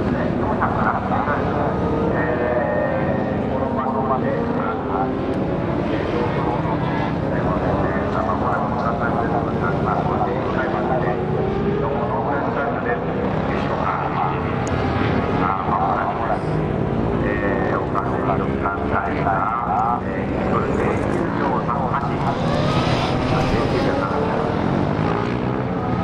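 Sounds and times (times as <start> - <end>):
motorcycle engine revving: 16.4 - 26.0.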